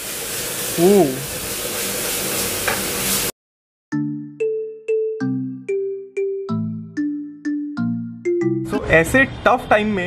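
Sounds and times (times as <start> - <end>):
food sizzling in a pan: 0.0 - 3.3.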